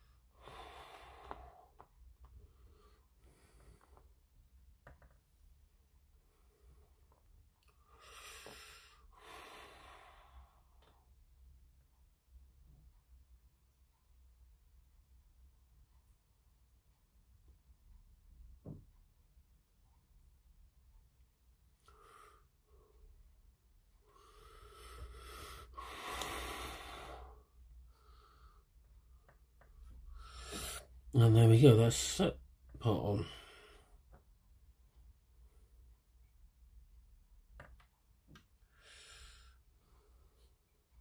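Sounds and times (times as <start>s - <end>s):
person breathing: 0.0s - 4.1s, 7.7s - 11.0s, 21.8s - 23.2s, 24.0s - 29.3s, 29.9s - 31.0s, 33.2s - 34.2s, 38.6s - 40.7s.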